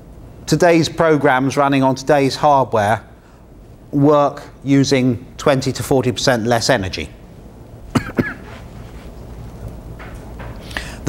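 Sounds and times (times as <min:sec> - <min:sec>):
man coughing: 0:07.9 - 0:08.6.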